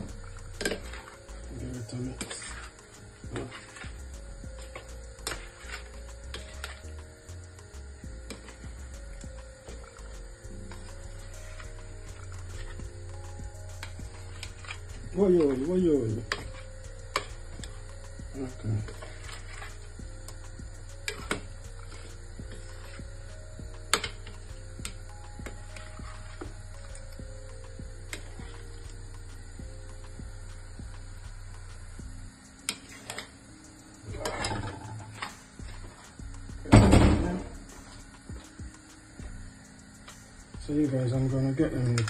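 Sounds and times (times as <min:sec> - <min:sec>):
soft background music: 0:00.0 - 0:42.0
steady low hum: 0:00.0 - 0:42.0.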